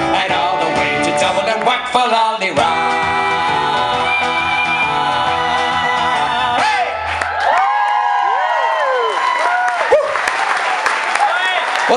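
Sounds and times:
audience applauding and cheering: 3.6s - 5.9s, 6.5s - 11.9s
whoops from audience: 7.2s - 10.4s.

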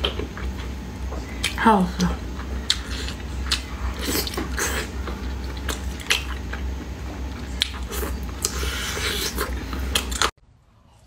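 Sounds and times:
faint eating sounds: 0.0s - 11.0s
chewing and biting chicken wing: 2.4s - 10.3s.

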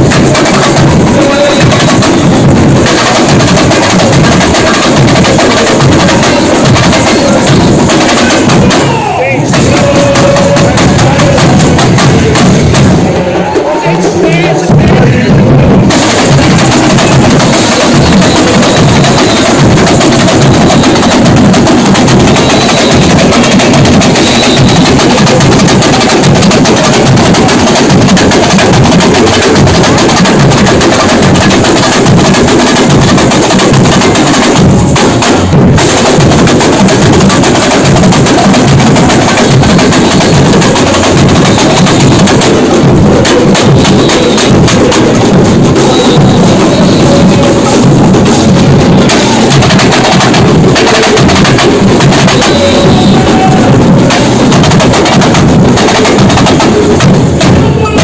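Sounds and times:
deep bass drums: 0.0s - 13.2s, 14.7s - 58.0s
samba drum section playing: 0.0s - 58.0s
snare drum strokes: 0.0s - 58.0s.

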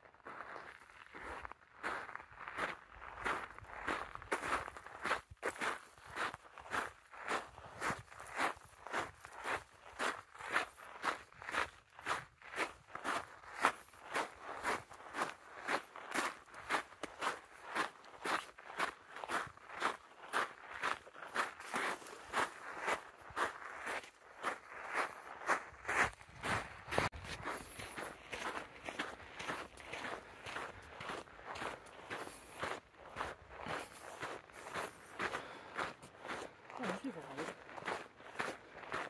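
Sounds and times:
footsteps on gravel: 0.2s - 39.0s.

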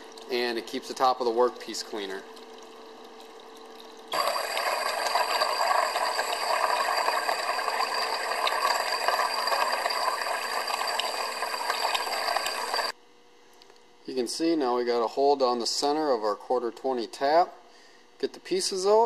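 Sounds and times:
flushing water: 2.0s - 12.9s
electrical arcing crackling sizzle: 4.1s - 12.9s.

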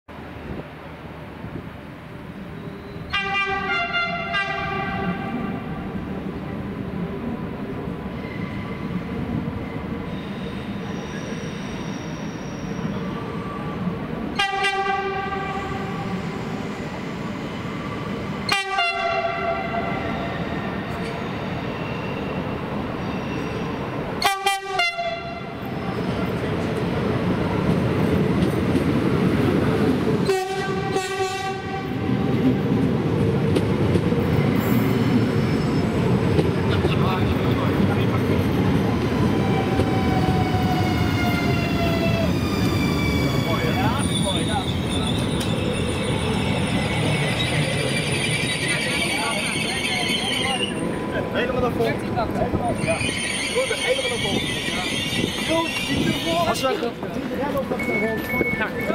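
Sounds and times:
train rumbling: 0.1s - 58.9s
train horn blasts: 3.1s - 5.5s, 14.4s - 16.0s, 18.5s - 20.2s, 24.2s - 25.6s, 30.2s - 32.3s.

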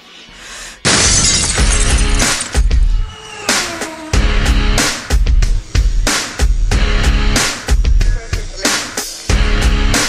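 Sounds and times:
background music: 0.0s - 10.0s
loud crash: 0.9s - 2.7s.

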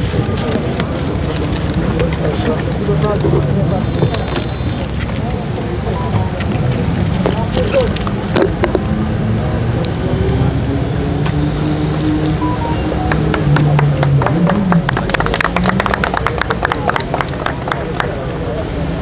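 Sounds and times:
people's voices: 0.0s - 19.0s.

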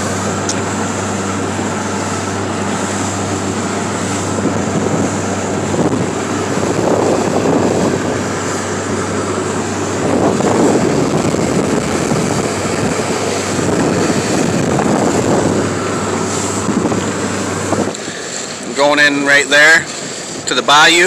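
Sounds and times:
motorboat engine running: 0.0s - 21.0s
rush of wind and water: 0.0s - 21.0s.

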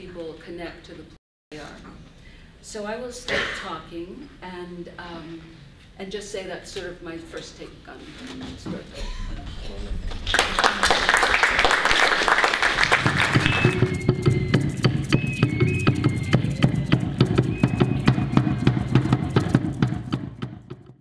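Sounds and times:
audience clapping: 10.1s - 14.5s
music: 11.8s - 21.0s.

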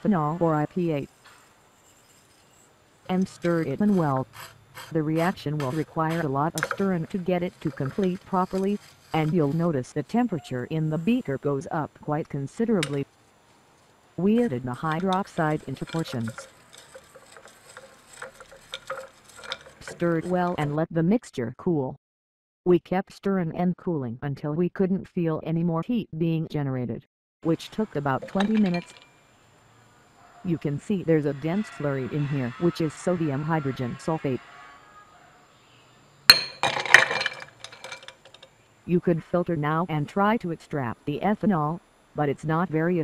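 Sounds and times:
glass rod scraping in slurry: 0.1s - 11.7s, 12.3s - 20.6s, 28.1s - 29.1s, 36.3s - 38.5s
glass-on-glass clink: 28.2s - 29.1s, 36.3s - 38.1s.

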